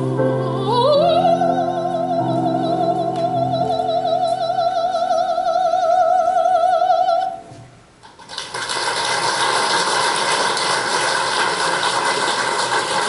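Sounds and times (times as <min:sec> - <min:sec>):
soprano singing with vibrato: 0:00.0 - 0:07.5
audience applause: 0:08.2 - 0:13.0.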